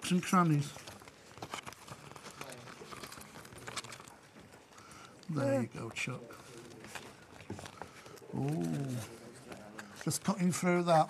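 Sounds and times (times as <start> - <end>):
paper rustling: 0.1 - 11.0.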